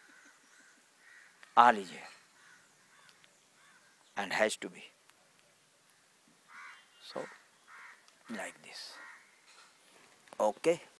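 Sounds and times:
crow cawing: 0.0s - 4.1s, 5.9s - 9.8s.

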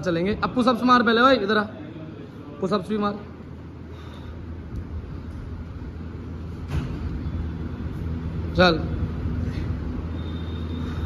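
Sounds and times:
gym background rumble: 0.0s - 11.0s.

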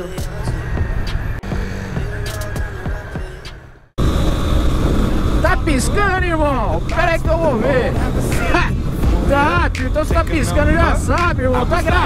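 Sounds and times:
city traffic noise: 0.0s - 12.0s
wind and motorcycle engine rumble: 0.4s - 12.0s
motorcycle engine low speed: 0.5s - 12.0s.

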